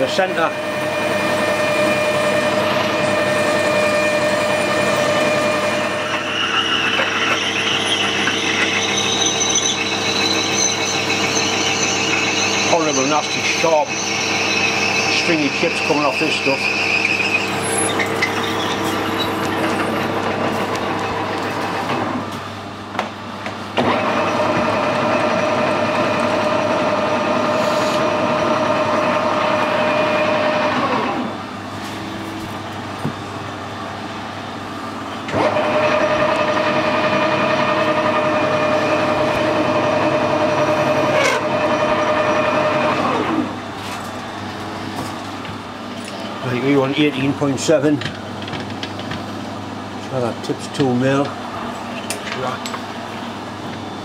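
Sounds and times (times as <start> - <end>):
metal lathe running: 0.0 - 22.2, 23.8 - 31.3, 34.2 - 54.0
cutting whine: 0.0 - 33.3, 35.0 - 54.0
drill cutting into metal: 0.3 - 20.1, 35.3 - 43.5.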